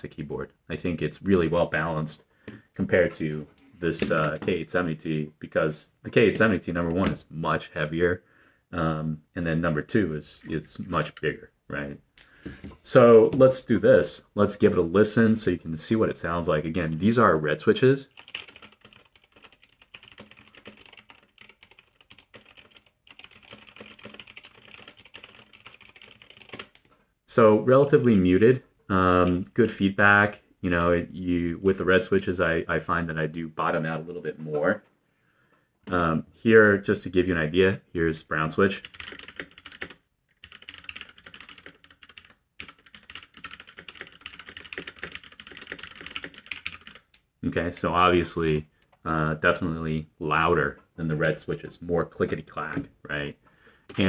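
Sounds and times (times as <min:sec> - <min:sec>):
mechanical keyboard typing: 0:18.1 - 0:26.9, 0:38.8 - 0:47.1.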